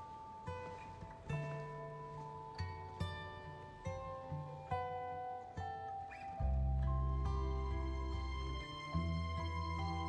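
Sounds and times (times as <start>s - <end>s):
acoustic guitar plucking: 0.0s - 10.0s.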